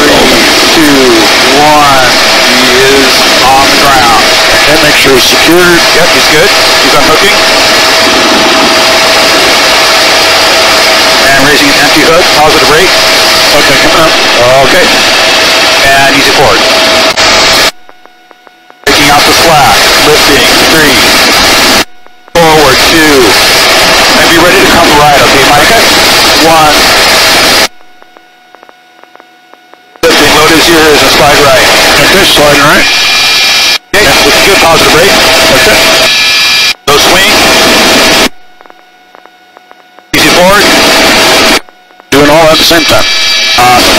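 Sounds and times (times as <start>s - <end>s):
muffled voice on intercom: 0.0s - 7.5s, 11.2s - 15.1s, 15.7s - 16.7s, 18.9s - 21.2s, 22.4s - 23.5s, 24.1s - 26.9s, 30.0s - 33.0s, 34.0s - 36.1s, 36.9s - 37.4s, 40.1s - 40.7s, 42.1s - 43.9s
helicopter rotor and engine: 0.0s - 17.7s, 18.9s - 21.8s, 22.4s - 27.7s, 30.0s - 38.3s
mid-pitched whine: 0.0s - 43.9s
steady electrical hum: 0.0s - 43.9s
faint irregular clicks: 17.8s - 18.9s, 27.8s - 30.0s, 38.5s - 40.1s.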